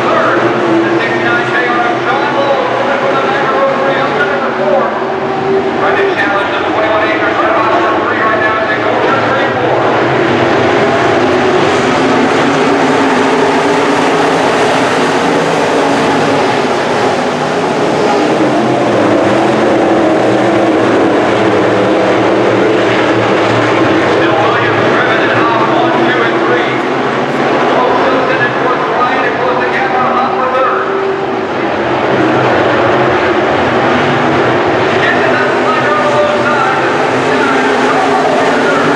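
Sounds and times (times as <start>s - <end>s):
race car engines droning: 0.0s - 38.9s.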